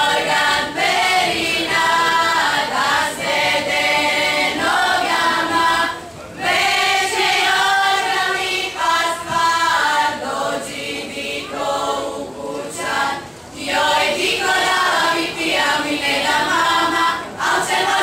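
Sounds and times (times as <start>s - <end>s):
choir singing: 0.0s - 18.0s.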